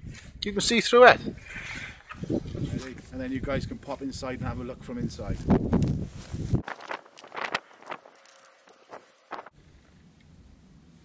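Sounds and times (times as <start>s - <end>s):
wind rumble on microphone: 0.0s - 0.5s, 1.1s - 8.0s
netting scraping and rustling: 5.4s - 9.6s.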